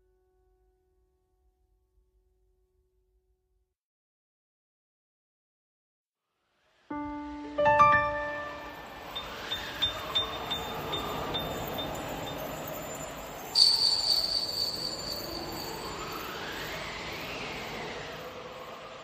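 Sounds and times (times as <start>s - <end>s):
soft swelling texture: 6.9s - 19.0s
bright bell-like chime: 7.9s - 16.3s
high chime tinkles: 8.4s - 16.4s.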